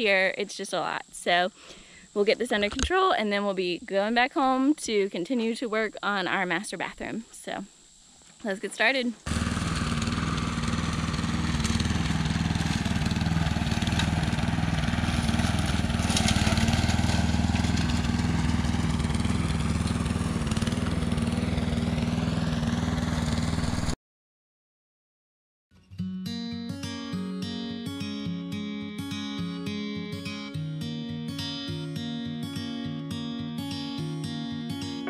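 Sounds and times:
lawn mower engine cutting weeds: 9.2s - 24.0s.

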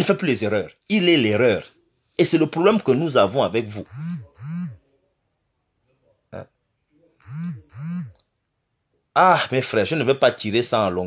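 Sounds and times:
man humming mm sounds: 7.2s - 8.2s.

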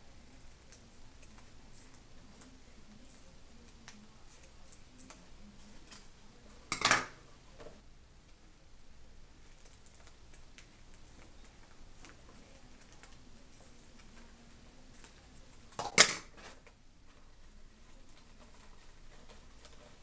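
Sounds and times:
foil ribbon rustling: 16.3s - 20.0s.

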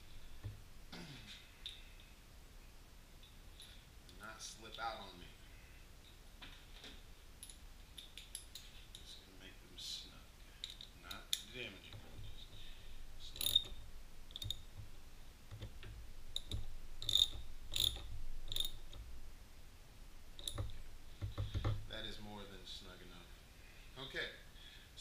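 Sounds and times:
hand tool clicking on bolts: 13.2s - 14.9s, 15.5s - 19.1s.

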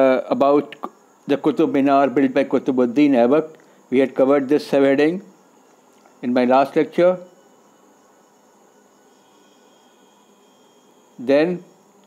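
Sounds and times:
faint high whine: 0.0s - 12.0s
faint room tone hiss: 0.0s - 12.0s.

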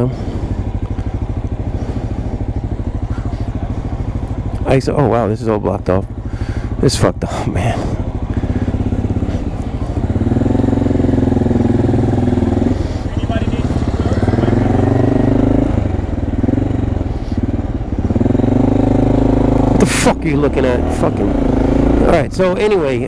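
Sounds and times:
motorcycle engine running: 0.0s - 23.0s.

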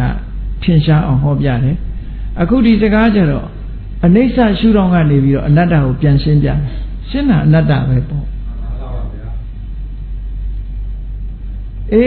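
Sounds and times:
steady low hum: 0.0s - 12.0s
man speaking: 2.4s - 9.4s.

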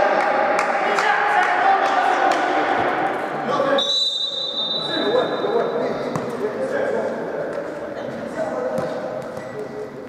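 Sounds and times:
players' voices echoing: 0.0s - 10.0s.

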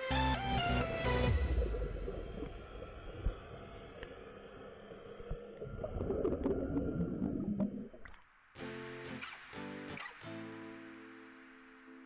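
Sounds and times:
bubbles gurgling underwater: 5.6s - 8.1s.

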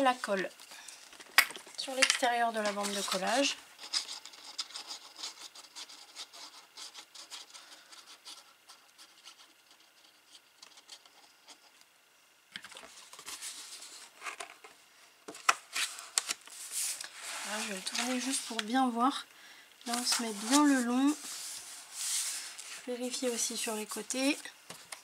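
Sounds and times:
card rustling: 12.6s - 18.9s, 19.8s - 25.0s.

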